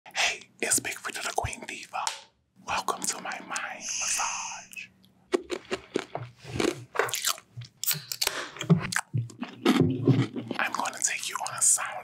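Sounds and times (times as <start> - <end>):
person whispering: 0.1 - 4.9, 10.6 - 12.0
steady high hiss: 3.6 - 4.9.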